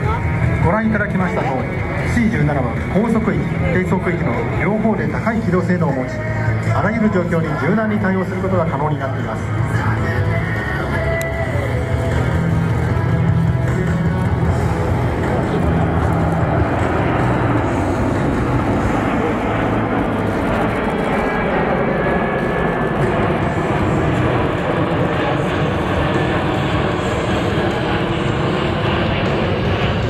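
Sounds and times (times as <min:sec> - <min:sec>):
jet aircraft flying past: 0:00.0 - 0:30.0.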